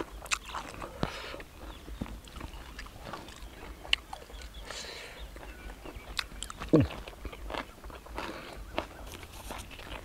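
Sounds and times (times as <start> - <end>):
person chewing: 0.0 - 10.0.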